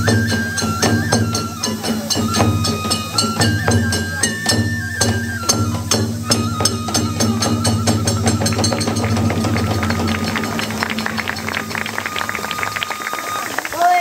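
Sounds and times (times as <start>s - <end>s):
drum strokes: 0.0s - 13.6s
bamboo flute long notes: 0.0s - 14.0s
small hand cymbals: 0.0s - 14.0s.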